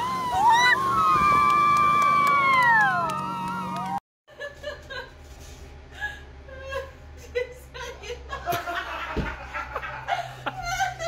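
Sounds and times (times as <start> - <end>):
high-pitched scream: 0.0 - 4.0.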